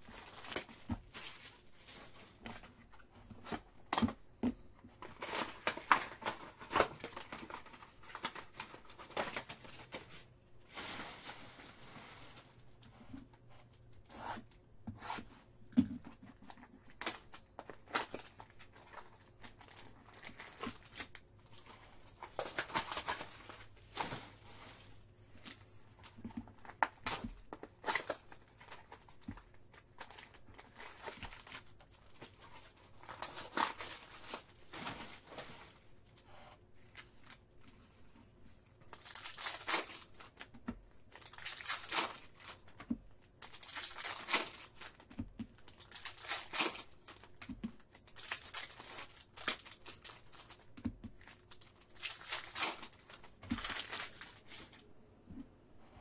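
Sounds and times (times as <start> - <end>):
cardboard and wrapper ripping: 0.0 - 2.7, 5.0 - 12.5, 16.5 - 24.9, 26.5 - 35.8, 38.9 - 42.8, 43.4 - 54.8
foil packs crinkling: 0.0 - 4.2, 4.9 - 12.8, 16.3 - 36.1, 38.8 - 54.8.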